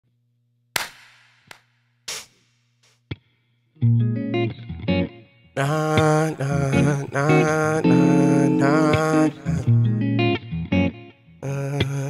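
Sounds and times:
sharp hits: 0:00.8 - 0:03.0.

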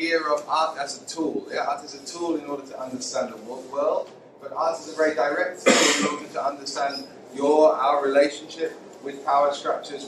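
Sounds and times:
man speaking: 0:00.0 - 0:10.0
man clearing his throat: 0:05.6 - 0:06.2.

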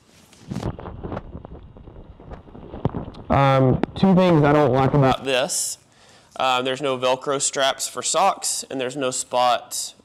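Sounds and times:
fabric rustling and flapping: 0:00.0 - 0:03.3.

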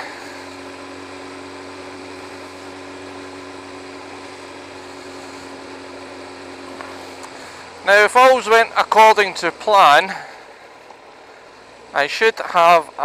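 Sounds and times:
motorcycle engine drone: 0:00.0 - 0:13.0
wind and road noise: 0:00.0 - 0:13.0.

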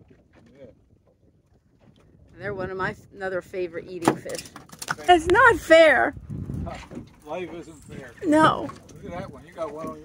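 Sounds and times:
wind and sea rumble: 0:00.0 - 0:10.0.

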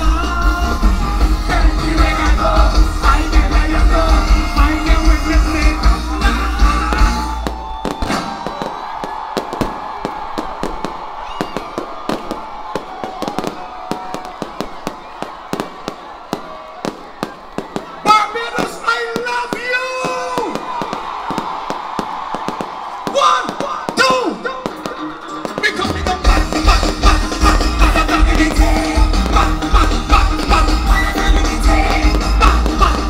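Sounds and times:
live band music with heavy bass: 0:00.0 - 0:08.4, 0:24.0 - 0:33.0
fireworks bangs and crackles: 0:00.0 - 0:33.0.

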